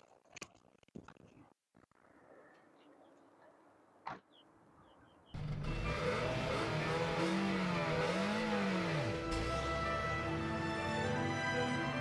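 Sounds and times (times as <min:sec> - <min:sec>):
car engine revving: 0:05.4 - 0:11.0.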